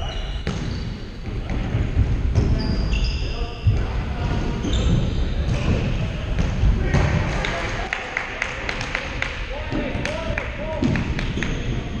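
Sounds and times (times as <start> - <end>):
sneakers squeaking on court: 0.0 - 1.0, 2.4 - 5.7.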